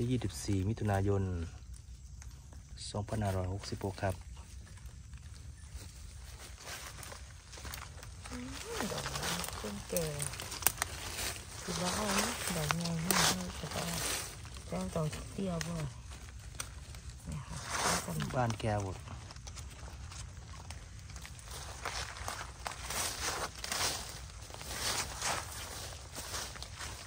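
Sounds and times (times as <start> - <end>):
tool scratching dry soil: 8.3 - 26.8.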